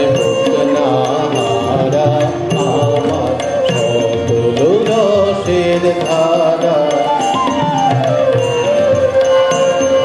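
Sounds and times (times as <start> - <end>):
man singing: 0.0 - 8.0
tabla strokes: 0.0 - 10.0.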